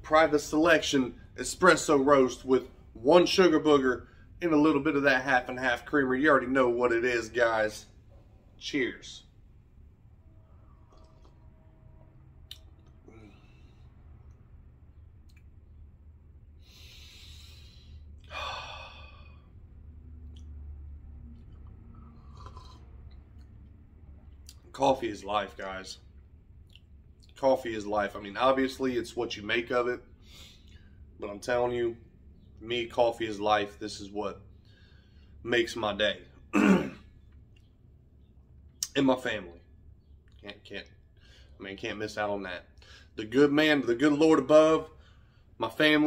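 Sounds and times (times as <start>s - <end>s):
man talking: 0.0s - 7.9s, 8.6s - 9.3s, 24.5s - 26.0s, 27.3s - 30.0s, 31.2s - 32.0s, 32.6s - 34.4s, 35.4s - 37.0s, 38.8s - 39.6s, 40.4s - 40.9s, 41.6s - 45.0s, 45.6s - 46.0s
faint low hum: 0.0s - 46.0s
man's breathy exhales: 16.6s - 19.5s.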